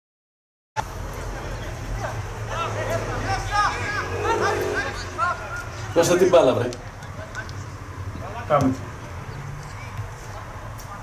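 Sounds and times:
people shouting calls: 0:01.7 - 0:06.2.

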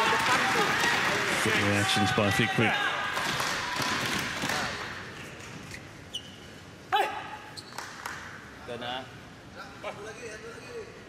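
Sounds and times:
arena crowd noise: 0:00.0 - 0:05.2
shoe squeaks on court: 0:05.7 - 0:06.6, 0:07.5 - 0:07.8.

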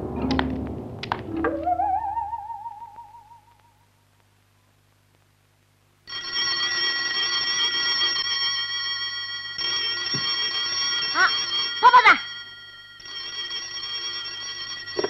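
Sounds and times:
telephone bell ringing: 0:06.1 - 0:15.0.

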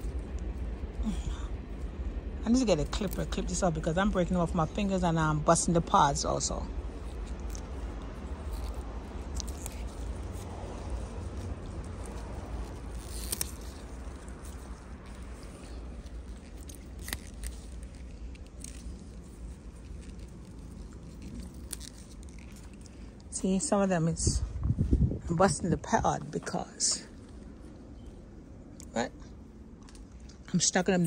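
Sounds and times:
pea vines rustling: 0:00.0 - 0:27.9
steady low rumble: 0:00.0 - 0:31.0
pea pods snapping off: 0:12.0 - 0:22.9.

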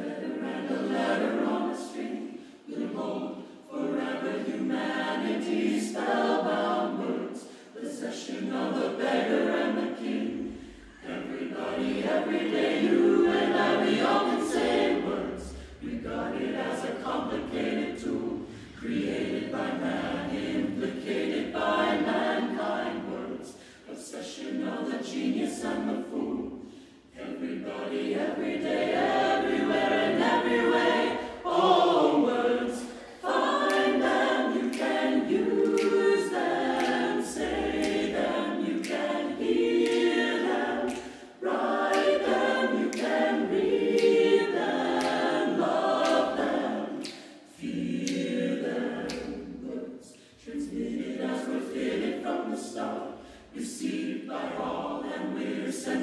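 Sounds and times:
choir singing a cappella: 0:00.0 - 0:56.0.

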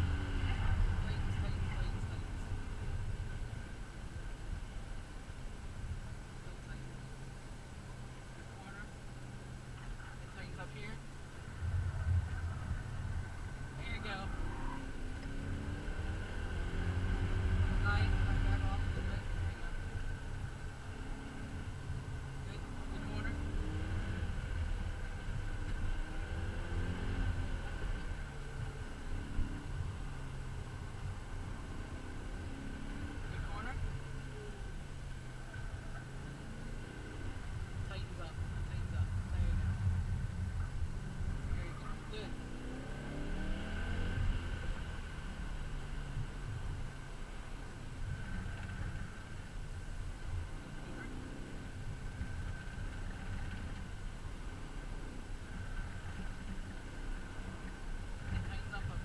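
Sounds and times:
car engine revving under acceleration: 0:00.0 - 0:59.0.

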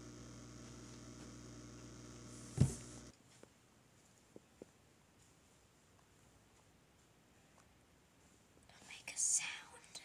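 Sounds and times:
person whispering: 0:08.7 - 0:10.0.

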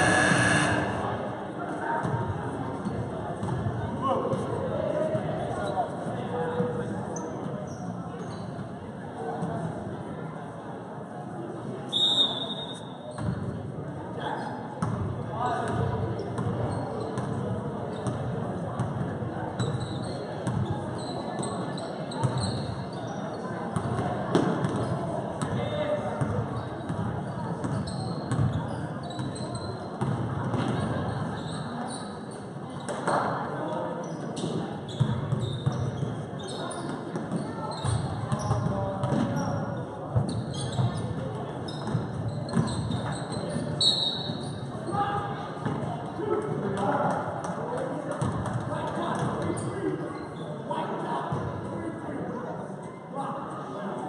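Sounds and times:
murmur of voices: 0:00.0 - 0:54.0
sneakers squeaking: 0:07.1 - 0:08.7, 0:11.9 - 0:13.5, 0:15.7 - 0:19.0, 0:19.6 - 0:25.5, 0:27.6 - 0:33.3, 0:33.9 - 0:46.1
basketball bouncing on gym floor: 0:41.8 - 0:43.0.

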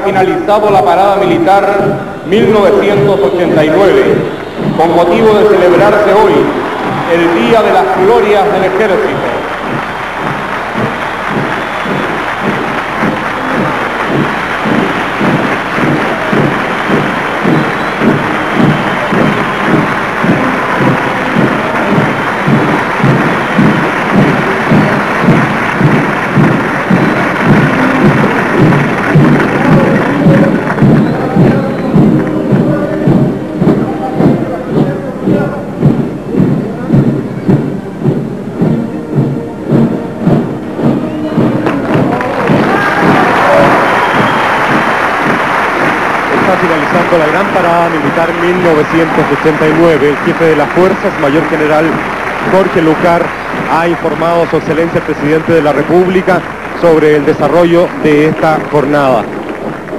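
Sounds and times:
band music with drum beat: 0:00.0 - 0:59.9
crowd cheering and applause: 0:00.0 - 0:59.9.

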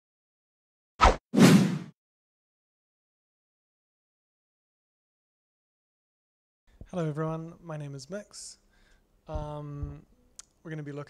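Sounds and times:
swoosh: 0:01.0 - 0:01.9.

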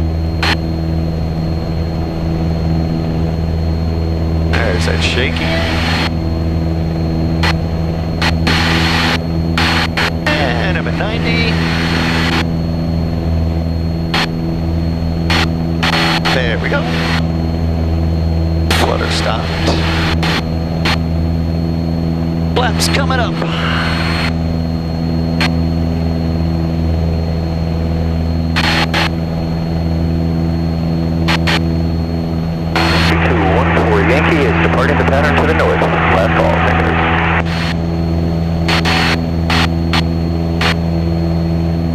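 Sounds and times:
propeller plane engine drone: 0:00.0 - 0:41.9.

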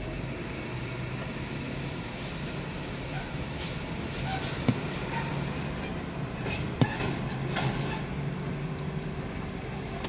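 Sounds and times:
car engine hum: 0:00.0 - 0:10.0
road noise: 0:00.0 - 0:10.0.

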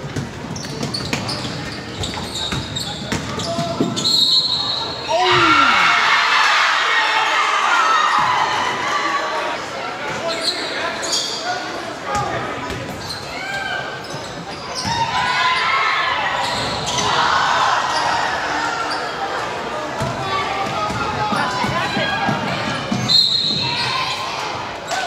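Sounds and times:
players and crowd shouting: 0:03.4 - 0:12.6, 0:14.8 - 0:25.0.

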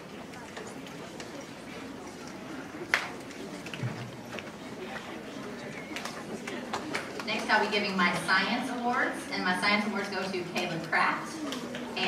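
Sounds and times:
murmur of audience voices: 0:00.0 - 0:12.0.

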